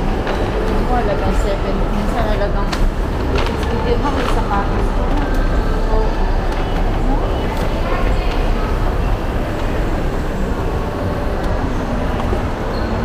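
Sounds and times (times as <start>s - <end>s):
indistinct chatter: 0.0s - 13.0s.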